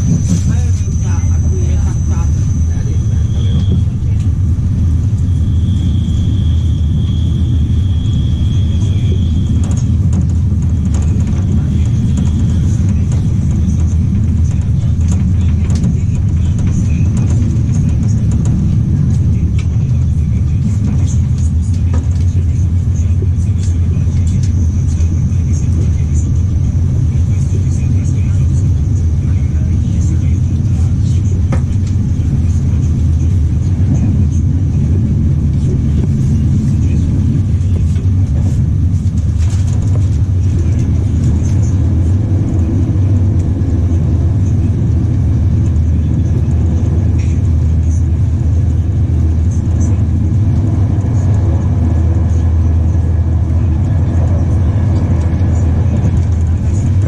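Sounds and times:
train wheels rumbling on track: 0:00.0 - 0:57.0.

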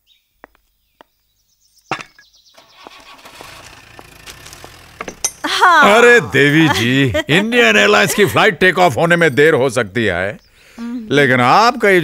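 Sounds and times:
motor engine running: 0:02.6 - 0:06.8.

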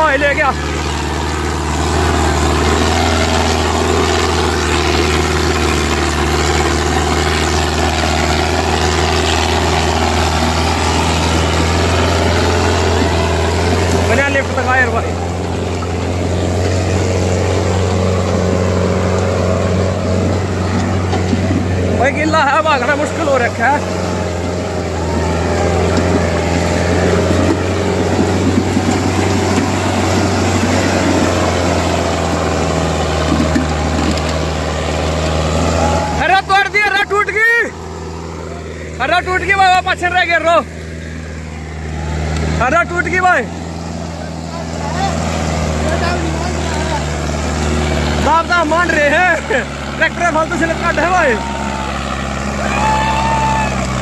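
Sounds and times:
tractor diesel engine under load: 0:00.0 - 0:54.0
men calling out: 0:21.8 - 0:28.4, 0:35.1 - 0:40.7, 0:41.9 - 0:54.0.

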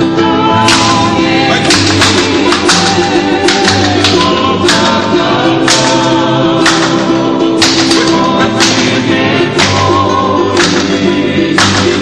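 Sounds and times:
musical accompaniment: 0:00.0 - 0:12.0
voices singing a held note: 0:00.0 - 0:12.0
sharp percussive hits: 0:00.6 - 0:12.0.

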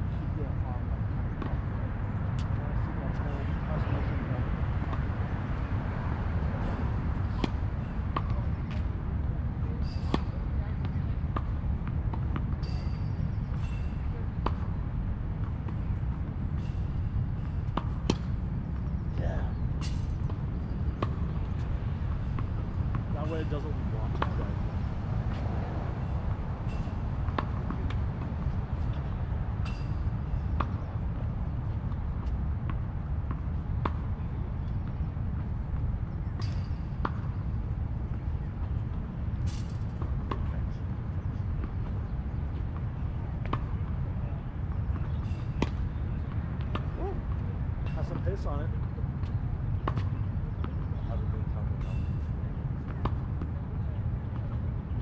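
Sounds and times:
steady low rumble: 0:00.0 - 0:55.0
tennis ball hits: 0:07.3 - 0:07.6, 0:19.8 - 0:24.4, 0:26.7 - 0:31.0, 0:44.8 - 0:48.3, 0:49.2 - 0:50.8.

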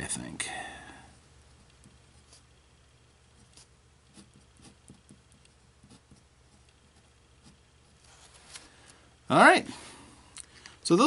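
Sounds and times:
nib pen scratching on paper: 0:01.6 - 0:02.6, 0:03.3 - 0:08.2.

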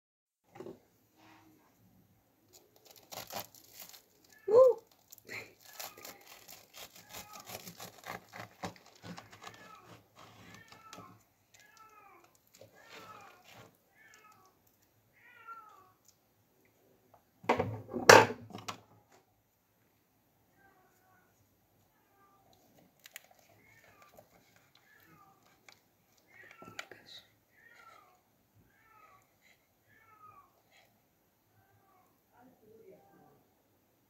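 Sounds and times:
knife sawing through toast: 0:05.9 - 0:10.6.

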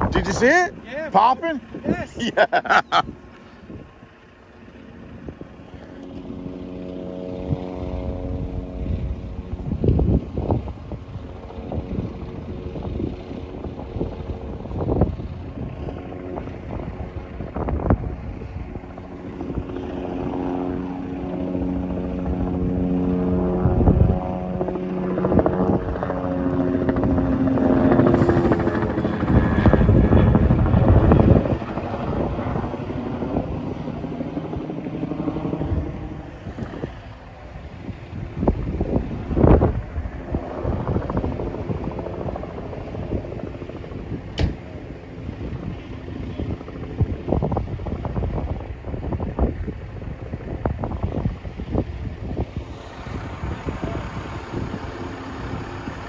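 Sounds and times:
rushing noise gusts: 0:00.0 - 0:45.7, 0:46.5 - 0:56.0
steady engine drone: 0:00.0 - 0:56.0.

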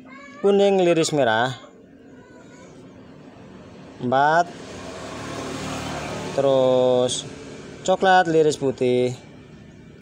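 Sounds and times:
distant motor vehicle running: 0:01.8 - 0:10.0.

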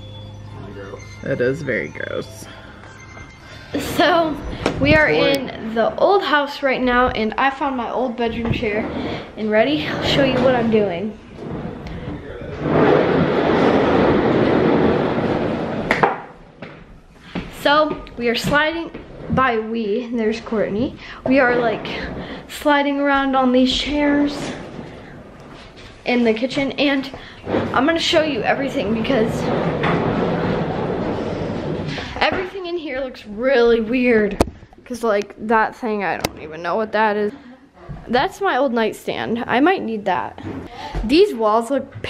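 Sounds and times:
chair casters rolling on hard floor: 0:00.0 - 0:07.2, 0:07.9 - 0:34.4.

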